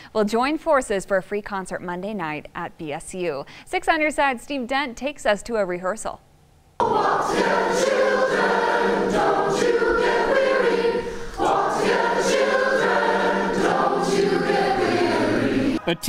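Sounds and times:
adult choir singing: 0:06.8 - 0:16.0
children's chorus singing: 0:06.8 - 0:16.0.

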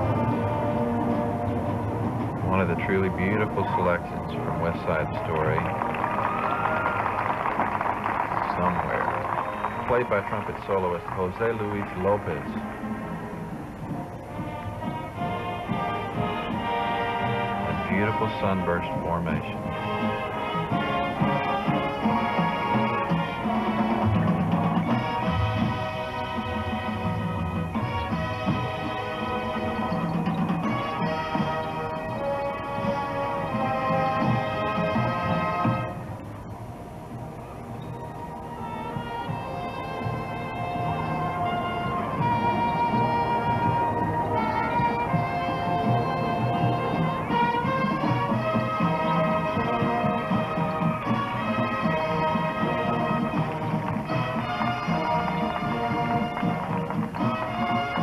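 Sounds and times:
low drums: 0:00.0 - 0:05.9, 0:07.6 - 0:36.4
marching band playing: 0:00.0 - 0:58.0.

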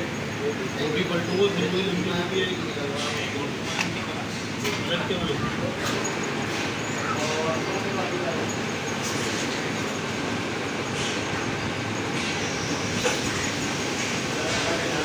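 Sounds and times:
indistinct voices: 0:00.0 - 0:15.0
rumbling shop background noise: 0:00.0 - 0:15.0.

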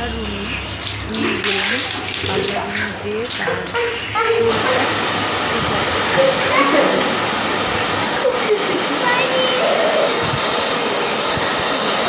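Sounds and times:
hair dryer running: 0:02.3 - 0:12.0.

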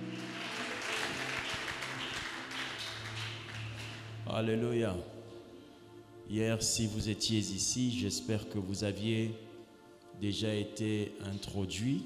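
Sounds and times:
crowd clapping: 0:00.0 - 0:04.2.

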